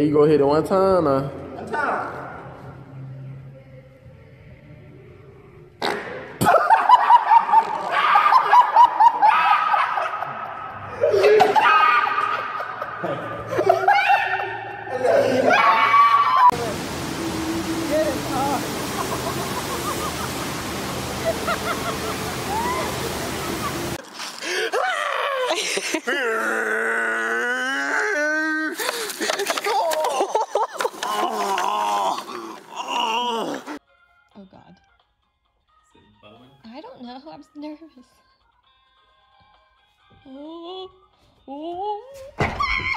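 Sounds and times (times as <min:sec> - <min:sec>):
laughter: 0:06.4 - 0:15.5, 0:18.9 - 0:20.6, 0:21.2 - 0:23.9, 0:29.0 - 0:31.2
steady noise: 0:16.5 - 0:24.0.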